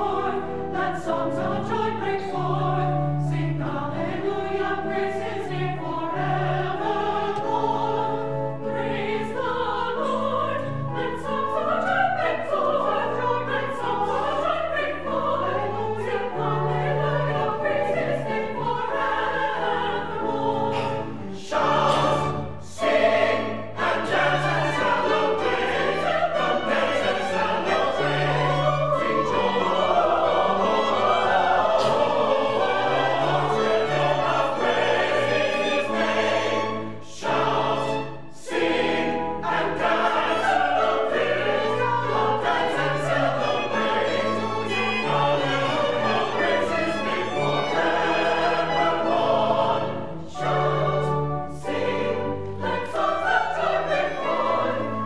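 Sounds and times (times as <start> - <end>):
church choir singing: 0.0 - 55.0
violins: 0.0 - 55.0.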